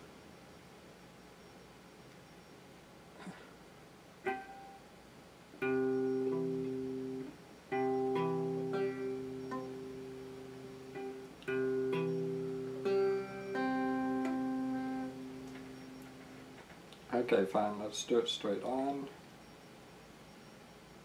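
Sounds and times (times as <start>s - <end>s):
electric guitar chord strummed: 4.2s - 4.8s, 5.6s - 16.6s
plucked guitar note: 4.3s - 4.8s, 5.6s - 16.3s.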